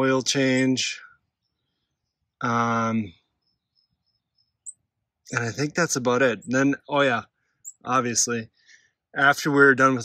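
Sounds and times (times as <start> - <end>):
faint high bird chirps: 0.1 - 9.0.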